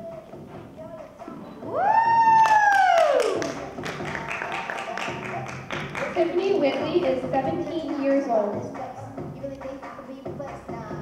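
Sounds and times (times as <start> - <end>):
person cheering woo: 1.6 - 3.6
scattered clapping: 2.3 - 7.1.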